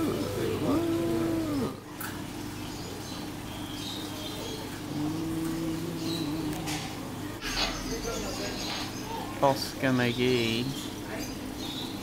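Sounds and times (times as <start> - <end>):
faint steady hum: 0.0 - 12.0
person holding long note: 4.9 - 6.8.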